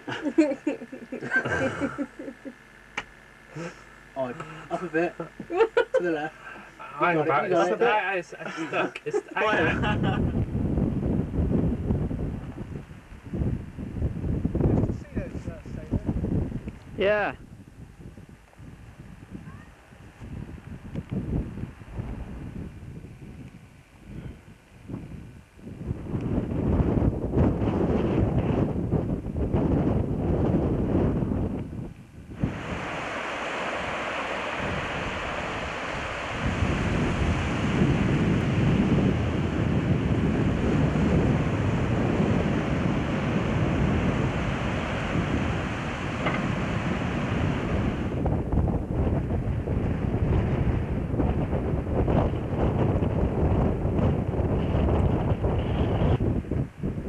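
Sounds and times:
wind buffeting microphone: 9.4s - 57.0s
steady bright rushing noise: 32.3s - 39.3s.

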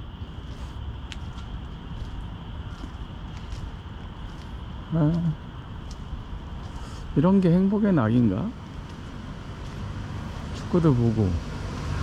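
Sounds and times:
steady low rumble: 0.0s - 11.6s
footsteps on paved sidewalk: 0.0s - 12.0s.

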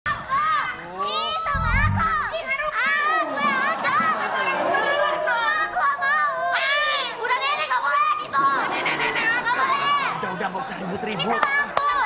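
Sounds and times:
low thump: 1.5s - 2.3s
high-pitched voices squealing: 1.5s - 2.4s.

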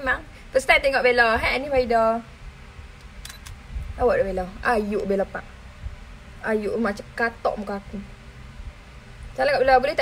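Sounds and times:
camera shutter clicks: 3.1s - 3.6s.

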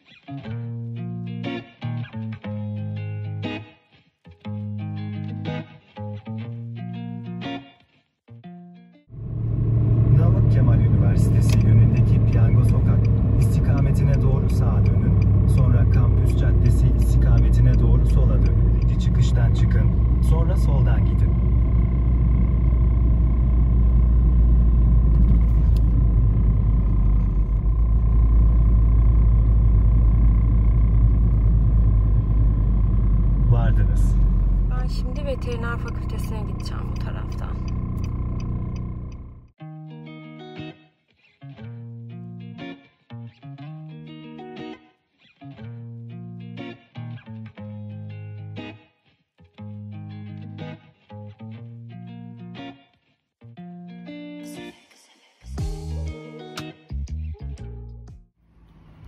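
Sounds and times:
guitar music: 0.0s - 54.9s, 55.6s - 58.1s
car cabin road and engine rumble: 9.2s - 39.6s.

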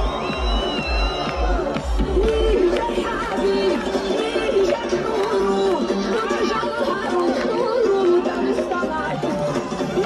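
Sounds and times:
crowd of men shouting and chanting: 0.0s - 10.0s
music playing: 0.0s - 10.0s.

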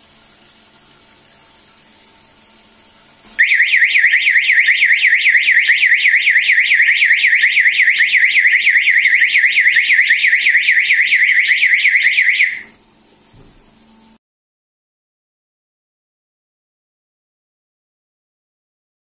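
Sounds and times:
electronic warbling alarm siren: 3.4s - 12.8s.

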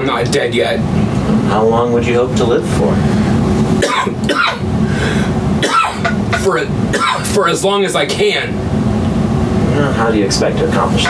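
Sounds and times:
steady low hum: 0.0s - 11.0s
man coughing: 3.8s - 4.6s, 5.6s - 7.3s.

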